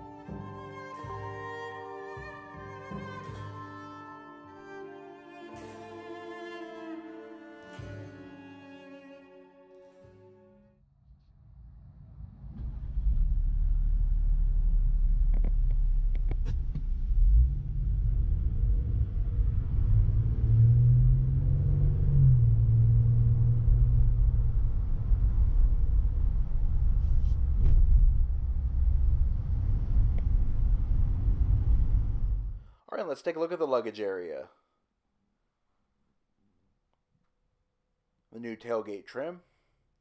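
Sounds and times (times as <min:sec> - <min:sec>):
road rumble: 0:11.4 - 0:32.6
car engine accelerating: 0:11.8 - 0:32.6.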